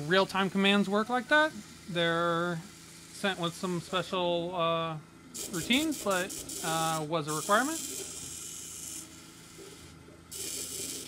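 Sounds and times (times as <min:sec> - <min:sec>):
laser cutter head mechanical hiss: 0:00.0 - 0:04.4, 0:05.3 - 0:11.0.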